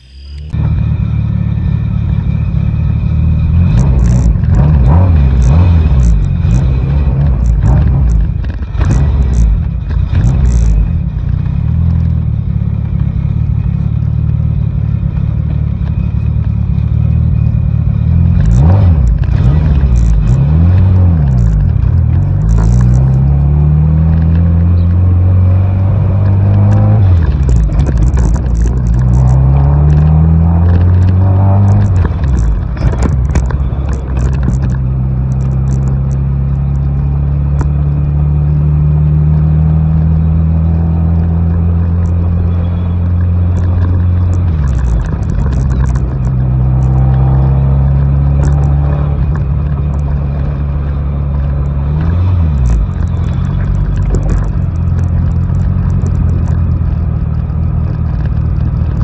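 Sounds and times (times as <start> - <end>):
car engine revving through gears: 0.4 - 12.2, 15.2 - 59.0.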